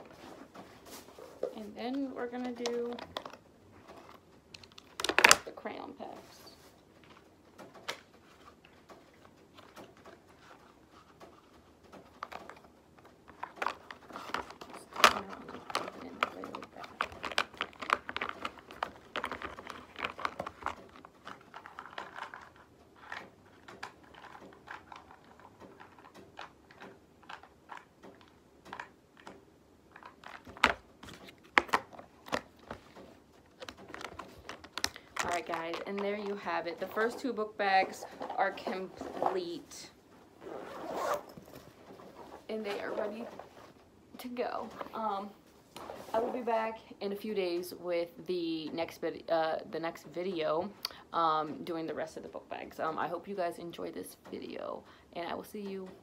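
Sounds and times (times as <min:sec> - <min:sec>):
plastic packaging crinkling: 0:00.0 - 0:46.8.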